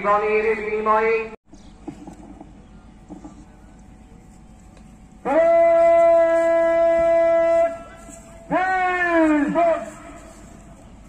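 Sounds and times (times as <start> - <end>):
bugle long held note: 5.2 - 10.7.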